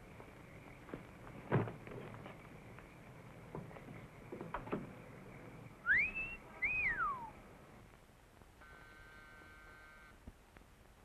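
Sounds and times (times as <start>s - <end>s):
wolf whistle: 5.8s - 7.4s.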